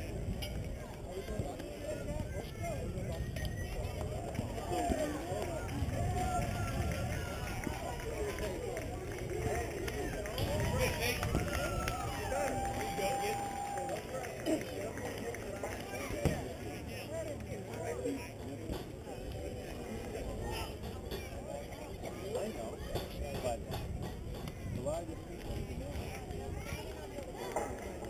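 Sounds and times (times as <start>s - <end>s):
long drawn-out shout: 9.7s - 14.2s.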